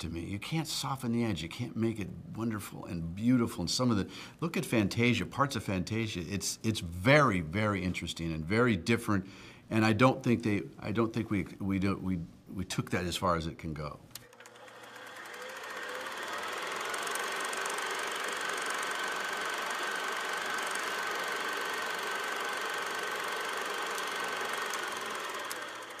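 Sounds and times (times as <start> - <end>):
mechanical whirring clatter: 14.2 - 26.0.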